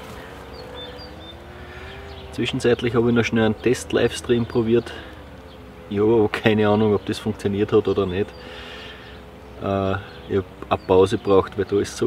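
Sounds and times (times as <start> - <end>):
high bird chirps: 0.0 - 2.9
faint engine drone: 0.0 - 12.0.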